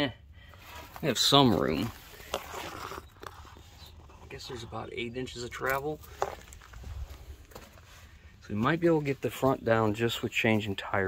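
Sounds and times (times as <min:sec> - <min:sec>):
crunching on gravel: 0:00.5 - 0:11.0.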